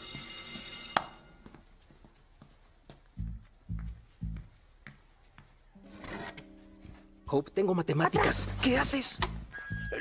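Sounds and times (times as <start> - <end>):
electric bell ringing: 0.0 - 1.5.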